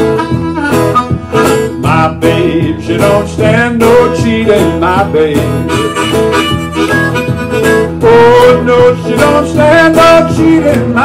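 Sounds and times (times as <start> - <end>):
blues harmonica playing: 0.0 - 2.6, 4.8 - 9.4
strummed acoustic guitar: 0.0 - 11.0.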